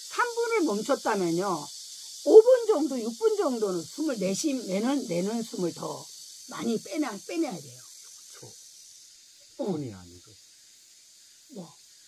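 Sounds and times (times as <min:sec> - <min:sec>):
steady high-pitched hiss: 0:00.0 - 0:12.0
man's short voiced sound: 0:09.7 - 0:10.3.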